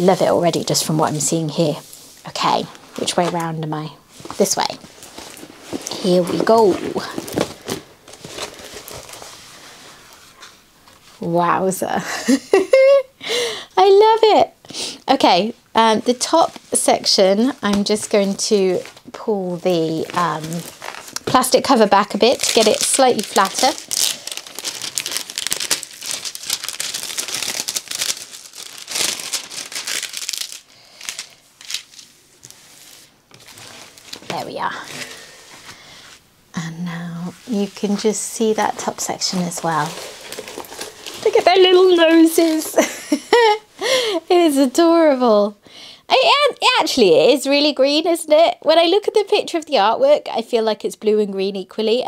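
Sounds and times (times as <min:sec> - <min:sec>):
plastic cover crinkling and rustling: 0:00.0 - 0:11.4, 0:15.1 - 0:36.2, 0:37.2 - 0:44.8.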